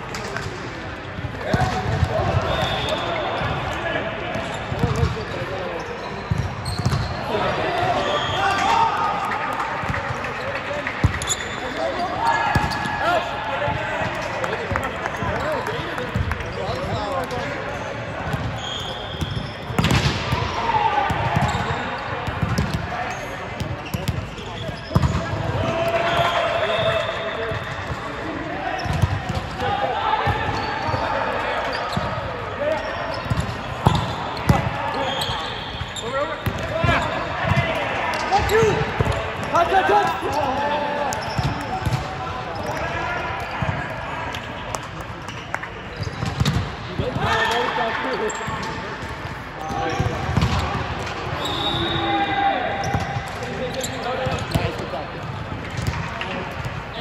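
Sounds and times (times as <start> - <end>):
volleyballs hit and bouncing: 0.0 - 51.4, 52.8 - 57.0
players shouting and chatting: 0.0 - 57.0.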